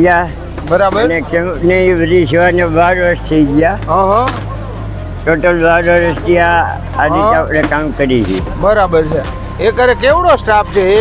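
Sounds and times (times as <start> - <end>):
man talking: 0.0 - 4.5, 5.2 - 11.0.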